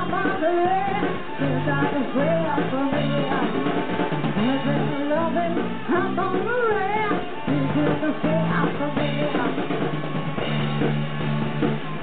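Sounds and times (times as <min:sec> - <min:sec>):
rock band playing: 0:00.0 - 0:12.0
sliding lead guitar melody: 0:00.0 - 0:12.0.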